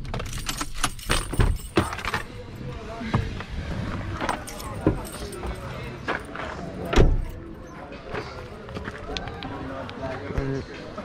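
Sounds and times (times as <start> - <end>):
faint voices: 1.4 - 11.0.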